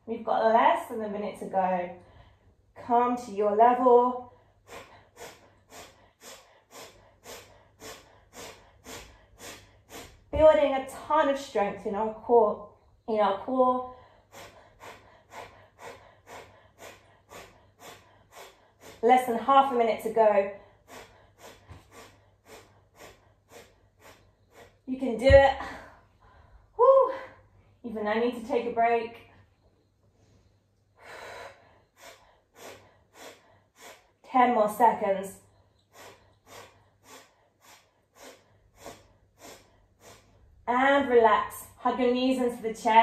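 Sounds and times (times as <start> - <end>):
sharp breaths through nose: 4.4 - 10.3, 14.0 - 19.0, 20.6 - 24.8, 30.1 - 34.2, 35.5 - 40.4.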